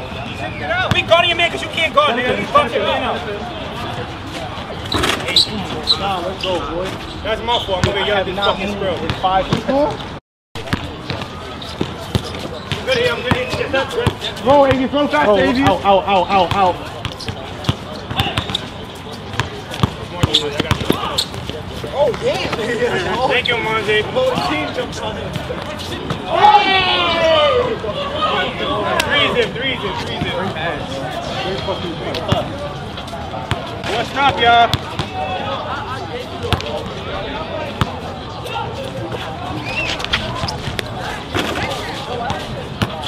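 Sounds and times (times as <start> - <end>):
basketball bouncing on court: 10.6 - 15.0, 16.4 - 18.6, 19.3 - 21.2
basketball bouncing on hard court: 19.3 - 21.0.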